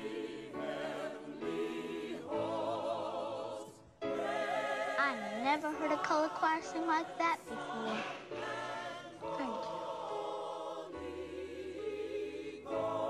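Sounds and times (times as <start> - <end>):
church choir singing: 0.0 - 13.0.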